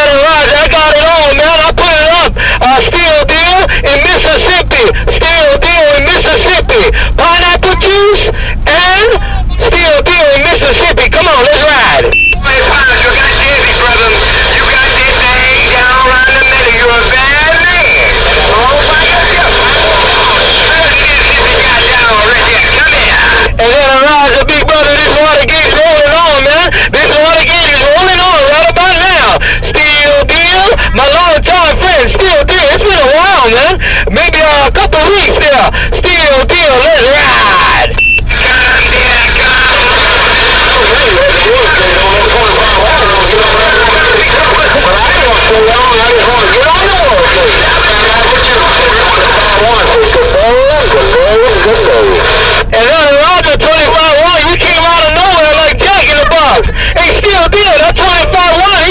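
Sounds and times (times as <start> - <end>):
distorted radio voices: 0.0 - 58.9
radio static and hum: 0.0 - 58.9.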